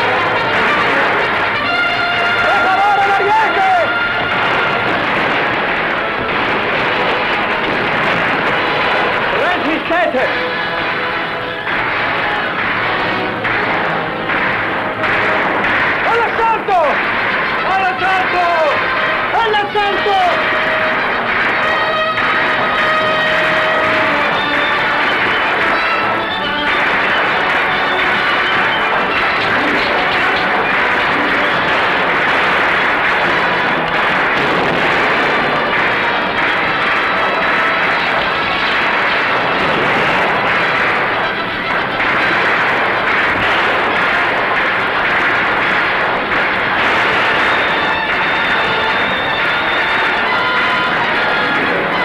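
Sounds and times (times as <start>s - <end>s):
explosions: 0.0s - 52.0s
gunfire: 0.0s - 52.0s.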